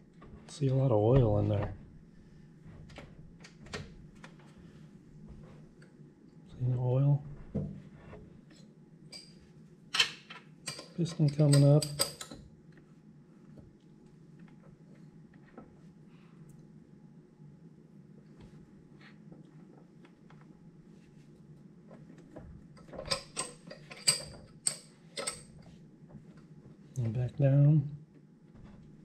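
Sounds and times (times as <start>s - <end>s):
faint low hum: 0.0s - 29.0s.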